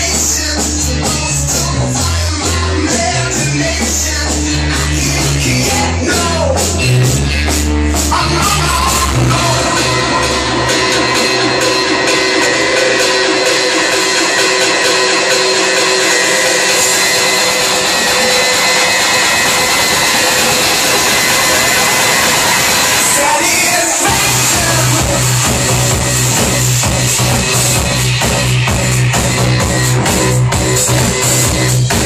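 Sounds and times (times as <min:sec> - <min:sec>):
electronic club dance music: 0:00.0 - 0:32.0.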